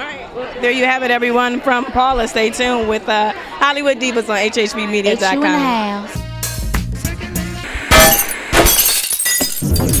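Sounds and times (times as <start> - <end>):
glass shattering: 7.9 - 10.0
tinkling glass shards: 8.0 - 10.0.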